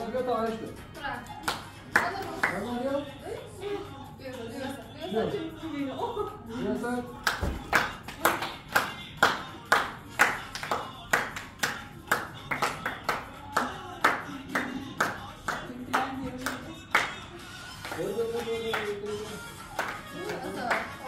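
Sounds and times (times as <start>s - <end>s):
hands clapping in rhythm: 1.4s - 2.7s, 7.2s - 21.0s.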